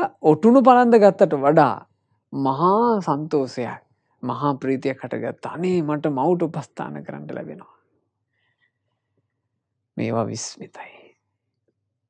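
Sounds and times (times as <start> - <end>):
man speaking: 0.0 - 7.8, 10.0 - 11.0.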